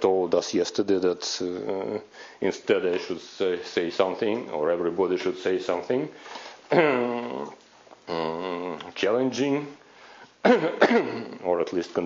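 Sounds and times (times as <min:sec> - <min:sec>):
man's long hesitation sound: 0:06.7 - 0:09.0.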